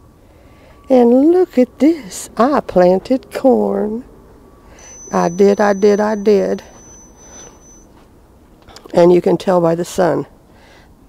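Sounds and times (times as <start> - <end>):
thin steady high tone: 4.7 - 7.9.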